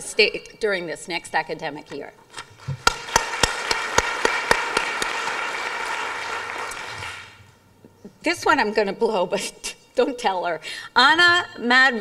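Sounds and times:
applause: 2.7 - 7.4
sharp single claps: 2.7 - 7.4.

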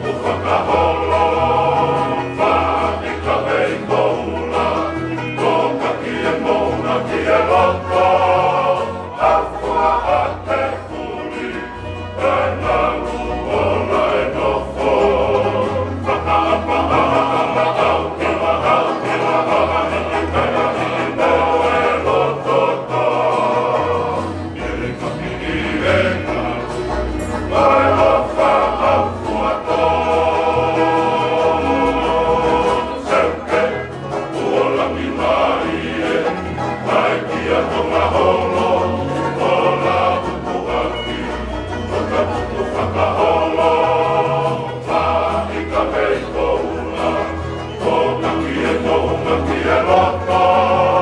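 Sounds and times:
male choir singing in harmony: 0.0 - 51.0
strummed acoustic guitars: 0.0 - 51.0.

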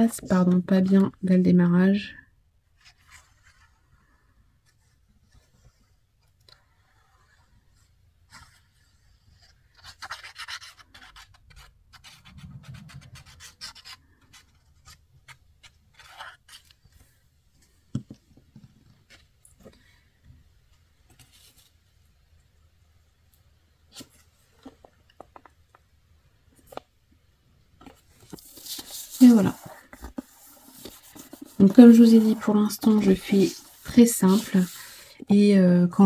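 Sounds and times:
paper rustling and scraping: 2.8 - 17.2, 27.8 - 35.1.

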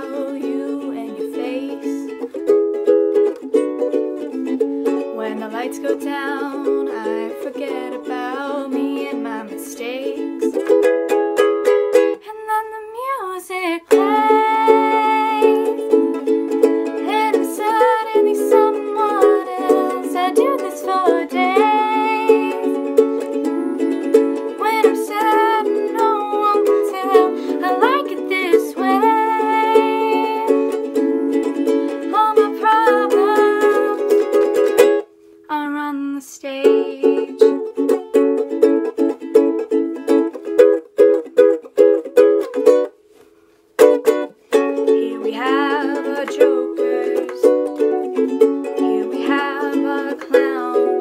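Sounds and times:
woman singing: 0.0 - 2.3, 4.8 - 10.7, 12.1 - 34.8, 35.5 - 38.1, 44.7 - 51.0
ukulele strumming: 0.0 - 51.0.

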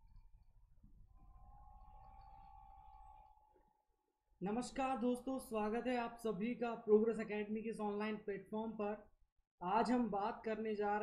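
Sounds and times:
high-pitched hum: 1.1 - 3.6.

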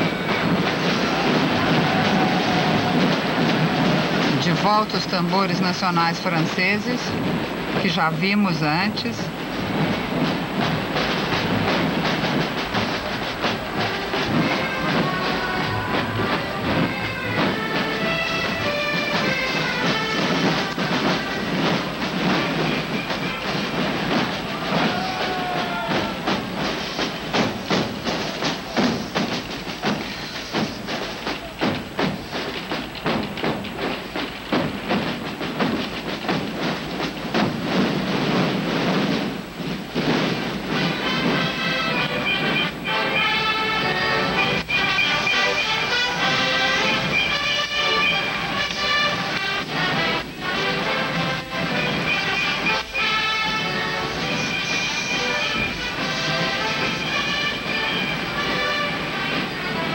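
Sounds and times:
parade drums playing cadence: 0.0 - 59.9.

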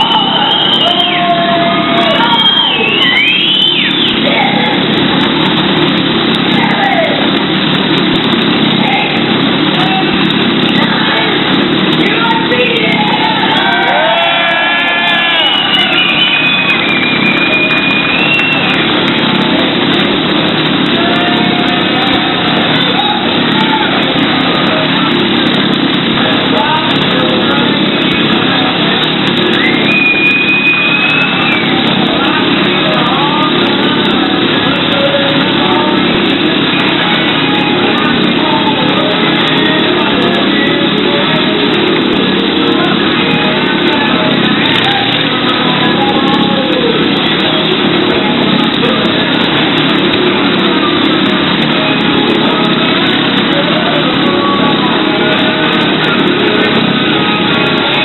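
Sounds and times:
long high whistle: 0.0 - 4.3, 13.7 - 19.0, 29.4 - 32.4
motorcycle engine running: 0.0 - 58.0.

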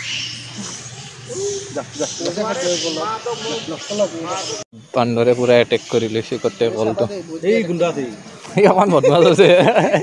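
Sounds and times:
indistinct voices talking: 0.3 - 10.0.

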